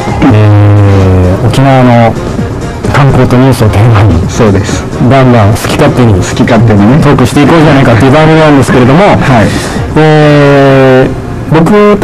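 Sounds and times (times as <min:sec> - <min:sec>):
buzzy tones: 0:00.0 - 0:12.0.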